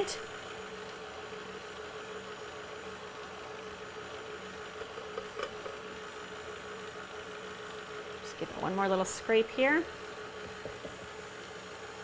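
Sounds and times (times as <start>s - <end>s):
stand mixer motor humming: 0.0s - 12.0s.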